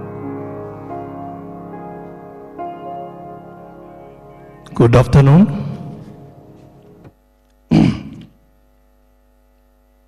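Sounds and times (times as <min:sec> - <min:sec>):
public address system hum: 0:03.7 - 0:08.4.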